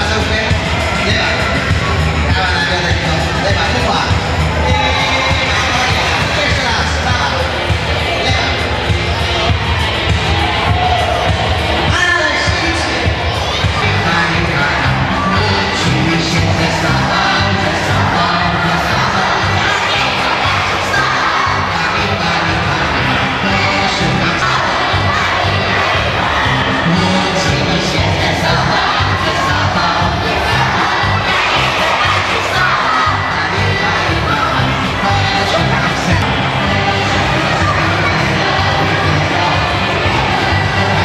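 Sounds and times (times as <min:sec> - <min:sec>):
children shouting and chattering: 0:00.0 - 0:41.0
loud dance music: 0:00.0 - 0:41.0.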